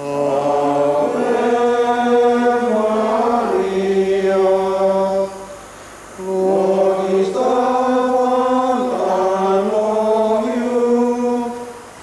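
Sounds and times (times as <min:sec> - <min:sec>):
slow sung chant: 0:00.0 - 0:12.0.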